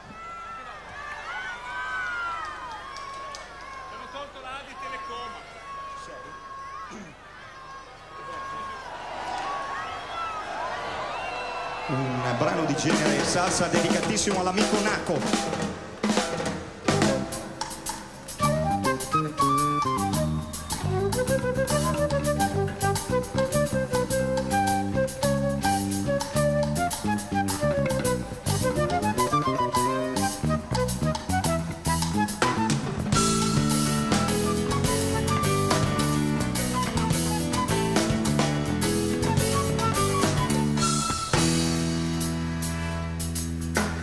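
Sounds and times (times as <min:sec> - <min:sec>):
band playing salsa music: 0:12.9 - 0:44.0
flute melody: 0:16.9 - 0:42.0
bass line: 0:18.4 - 0:44.0.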